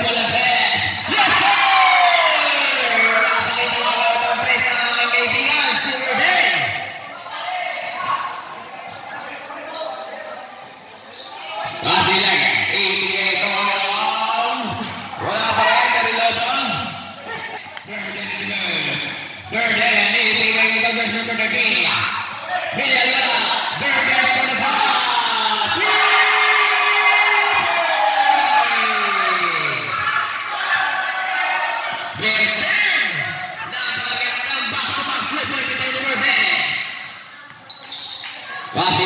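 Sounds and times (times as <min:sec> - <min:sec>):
people shouting and talking: 0:00.0 - 0:39.0.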